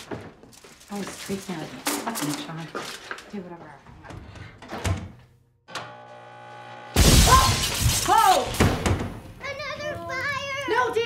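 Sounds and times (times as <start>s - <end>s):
microwave oven humming: 5.7s - 7.0s
loud crash and sparking: 6.9s - 9.1s.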